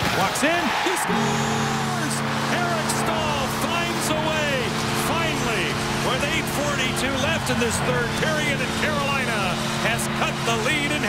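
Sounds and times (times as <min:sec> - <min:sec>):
crowd cheering: 0:00.0 - 0:11.0
arena goal horn: 0:01.0 - 0:11.0.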